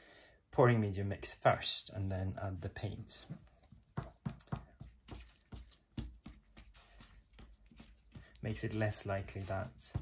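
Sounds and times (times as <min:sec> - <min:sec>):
stick stirring paint in plastic cup: 0:01.9 - 0:10.0.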